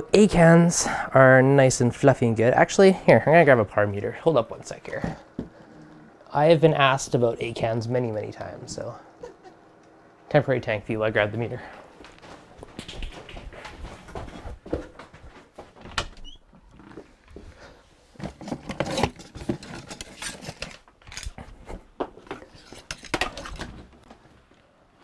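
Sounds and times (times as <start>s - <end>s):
objects being handled and clattering: 12.0s - 24.6s.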